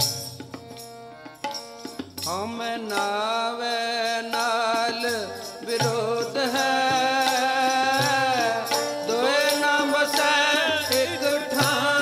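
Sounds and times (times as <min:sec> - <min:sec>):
person singing devotional song: 0:00.0 - 0:12.0.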